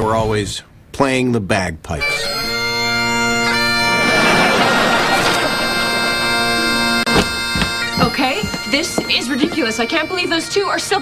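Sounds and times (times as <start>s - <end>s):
bagpipes playing: 2.1s - 11.0s
low thumps: 5.1s - 9.9s.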